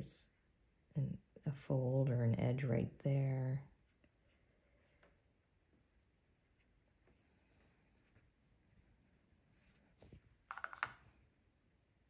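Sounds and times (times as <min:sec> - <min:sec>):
paintbrush clicks and taps: 0:10.5 - 0:11.0.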